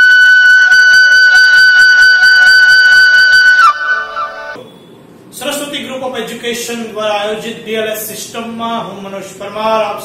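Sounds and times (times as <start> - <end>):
wind instrument long high note: 0.0 - 4.6.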